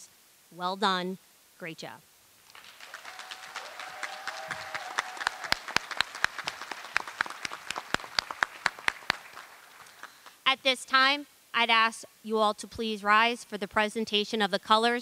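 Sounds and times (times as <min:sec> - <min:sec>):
audience applauding: 0:02.4 - 0:10.4.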